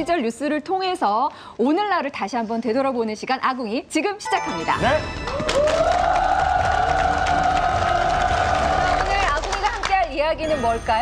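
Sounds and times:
people clapping: 5.2s - 10.2s.

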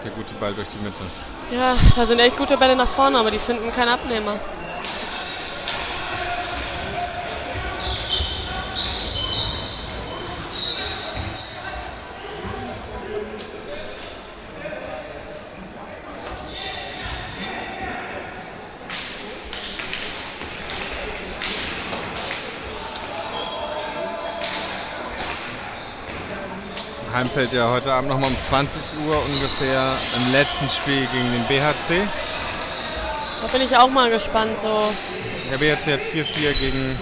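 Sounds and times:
distant voices of players: 0.0s - 37.0s.

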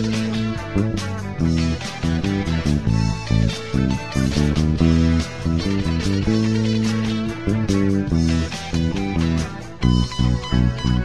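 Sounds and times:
electric bass guitar plucked: 0.0s - 11.0s
pop backing track with drums: 0.0s - 11.0s.

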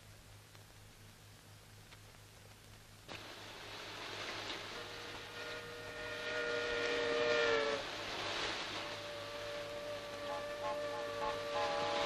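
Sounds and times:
steamboat whistle chord: 4.7s - 8.1s, 8.7s - 12.0s
steady rushing noise: 6.6s - 12.0s.

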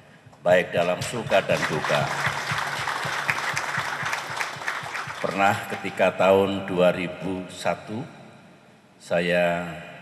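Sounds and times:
audience applause: 0.9s - 6.0s.

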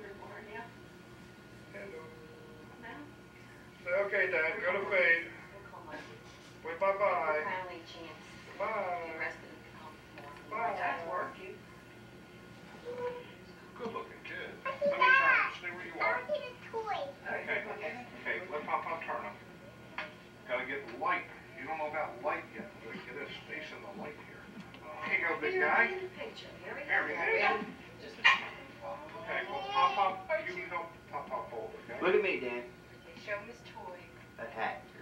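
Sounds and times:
baby crying through speaker: 29.0s - 30.3s.

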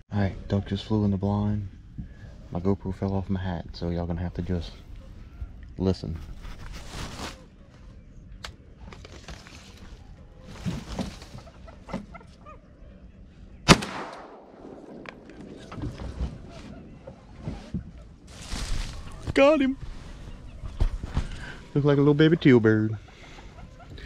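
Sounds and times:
shotgun shot: 13.6s - 15.9s.

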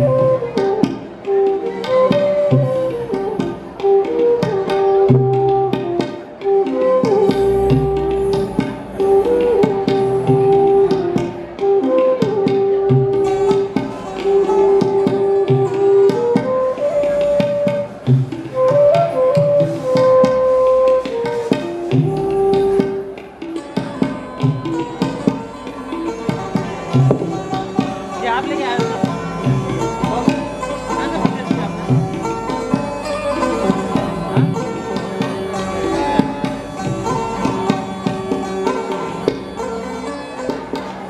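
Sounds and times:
bamboo flute melody: 0.0s - 41.0s
tabla strokes: 0.0s - 41.0s.

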